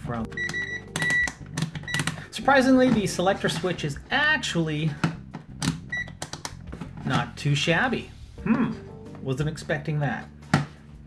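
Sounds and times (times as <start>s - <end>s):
multimeter short beep: 0.4s - 1.3s.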